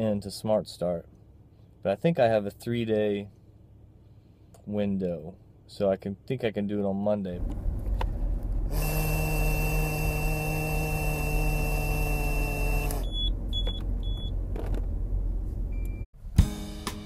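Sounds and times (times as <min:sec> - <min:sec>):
car road rumble: 0:07.4 - 0:08.8, 0:13.1 - 0:16.0.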